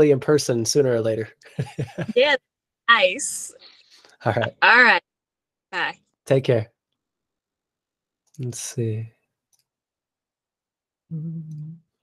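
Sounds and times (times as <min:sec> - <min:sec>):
man speaking: 0:00.0 - 0:02.1, 0:04.2 - 0:04.5, 0:06.3 - 0:06.7, 0:08.4 - 0:09.1.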